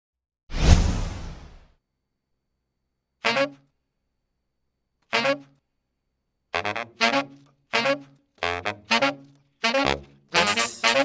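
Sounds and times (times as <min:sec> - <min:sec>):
deep whoosh: 0:00.5 - 0:01.6.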